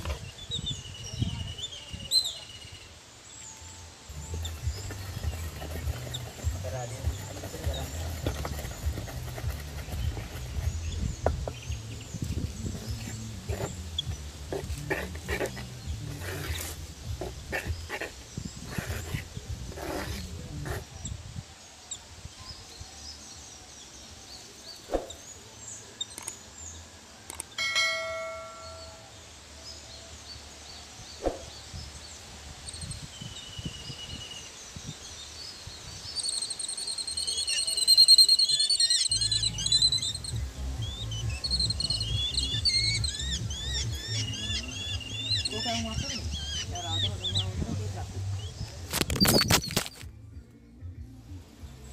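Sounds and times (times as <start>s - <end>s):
birds chirping and calling: 0.0s - 50.2s
spoon scraping clay bowl: 14.5s - 20.9s
short ringing chime: 27.6s - 29.1s.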